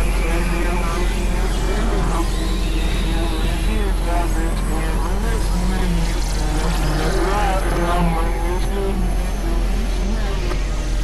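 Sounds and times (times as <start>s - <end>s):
experimental electronic noise music: 0.0s - 11.0s.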